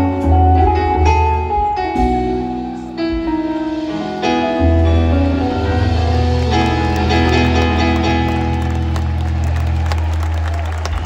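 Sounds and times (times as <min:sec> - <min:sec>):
live band final chord: 0:00.0 - 0:11.0
audience clapping and cheering: 0:06.0 - 0:11.0.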